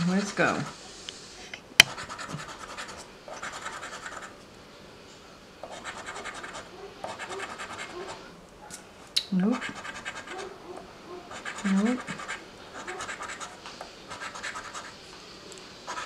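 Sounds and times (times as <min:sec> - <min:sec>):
coin scratching lottery ticket: 0:01.9 - 0:04.4, 0:05.6 - 0:08.2, 0:09.6 - 0:10.5, 0:11.3 - 0:15.0.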